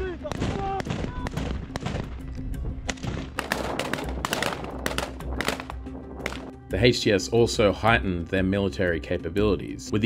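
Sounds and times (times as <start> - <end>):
background music: 0.0 - 10.0
rifle gunfire: 0.3 - 2.2, 2.9 - 6.5.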